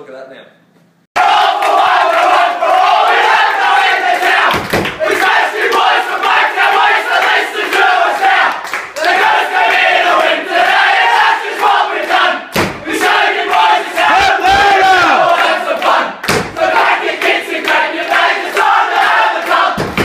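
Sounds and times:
group shouted singing: 0:01.2 - 0:20.0.

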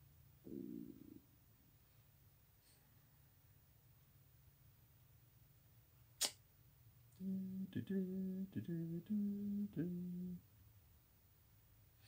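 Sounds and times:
man humming: 0:00.5 - 0:01.2, 0:07.2 - 0:10.4.

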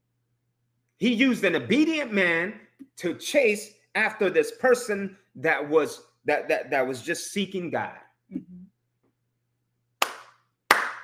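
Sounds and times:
hand claps: 0:10.0 - 0:11.0.

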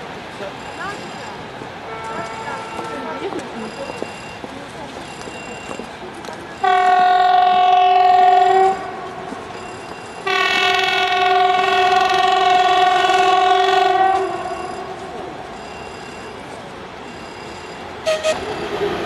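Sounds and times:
train horn blasts: 0:01.9 - 0:03.1, 0:06.6 - 0:09.3, 0:10.2 - 0:15.0, 0:18.0 - 0:18.5.

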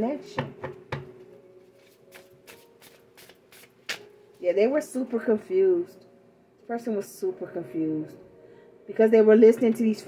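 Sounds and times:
cards being shuffled: 0:01.8 - 0:04.1.

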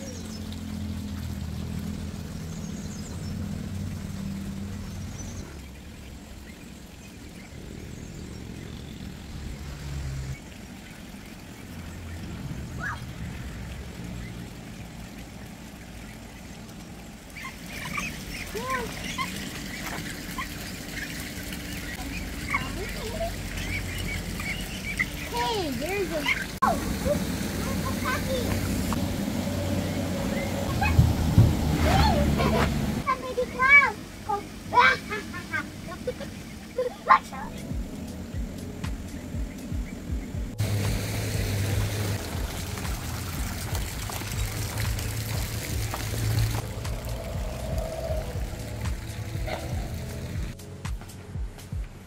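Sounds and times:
ducks peeping: 0:14.2 - 0:29.0
low steady rumble: 0:37.7 - 0:50.6.

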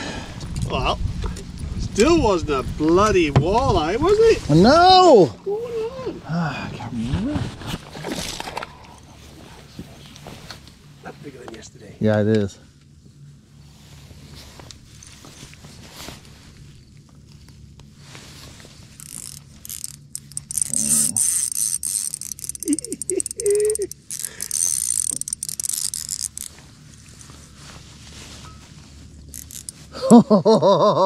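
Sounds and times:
fishing reel spinning: 0:18.9 - 0:27.1, 0:29.2 - 0:30.0.

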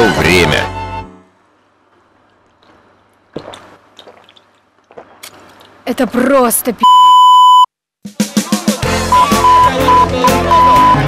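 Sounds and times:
censor bleep: 0:06.8 - 0:07.7, 0:09.1 - 0:11.0
music with drums and bass: 0:08.1 - 0:11.0.

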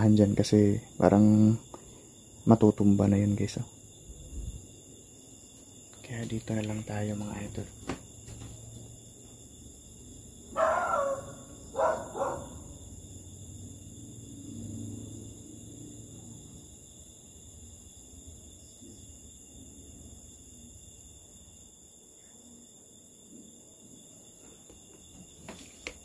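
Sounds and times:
night insects chirring: 0:00.0 - 0:26.0.

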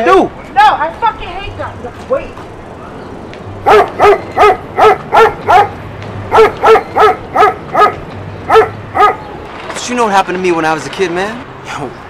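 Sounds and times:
dog barking high-pitched yaps: 0:03.6 - 0:09.2.

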